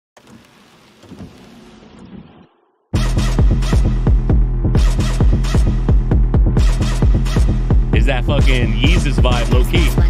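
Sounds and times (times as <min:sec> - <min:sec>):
hip-hop beat with heavy bass: 0:03.0 - 0:10.0.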